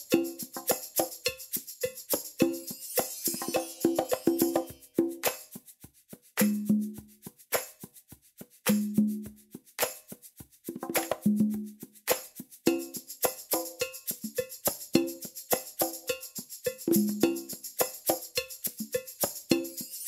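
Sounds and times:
fast percussion drum loop: 0.0s - 20.0s.

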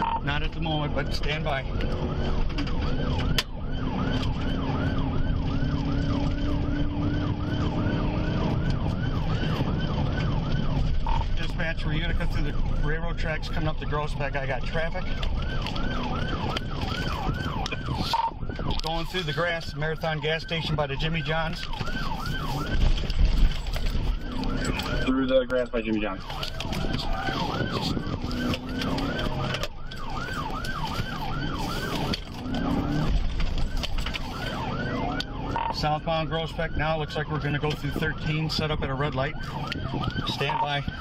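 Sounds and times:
car engine and road noise: 0.0s - 41.0s
police siren yelping: 0.0s - 41.0s.

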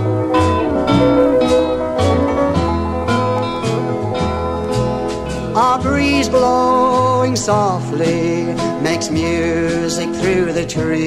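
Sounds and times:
instrumental country music: 0.0s - 11.0s.

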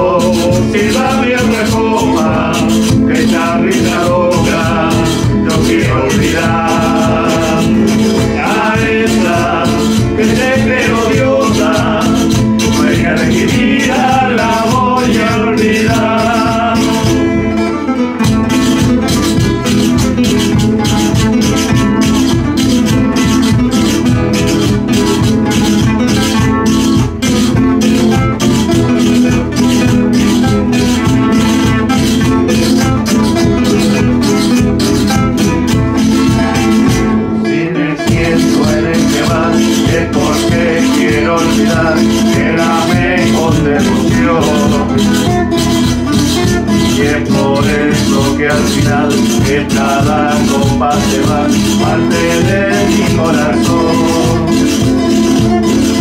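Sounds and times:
bass drum beaten: 0.0s - 37.4s, 38.0s - 56.0s
guitars strummed: 0.0s - 56.0s
man singing: 0.0s - 56.0s
rattling percussion: 0.0s - 56.0s.

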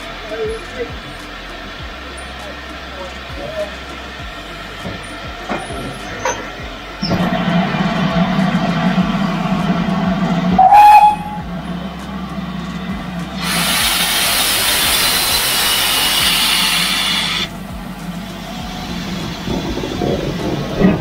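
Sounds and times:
steam locomotive blowing off steam: 0.0s - 21.0s
rising whistle-like note: 5.0s - 21.0s
hiss of escaping steam: 13.3s - 20.8s.

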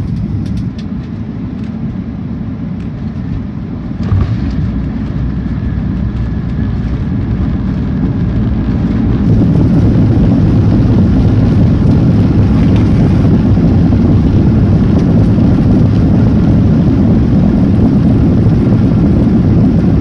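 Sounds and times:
aircraft engine and airflow roar: 0.0s - 20.0s.

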